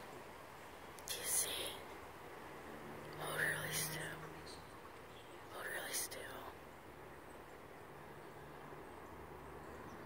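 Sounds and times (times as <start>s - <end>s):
person whispering: 1.0s - 1.9s, 3.1s - 4.4s, 5.5s - 6.6s.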